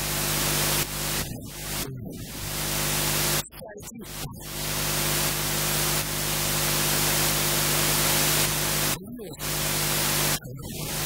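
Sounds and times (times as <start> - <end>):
loud static hiss: 0.0 - 3.4, 4.5 - 11.0.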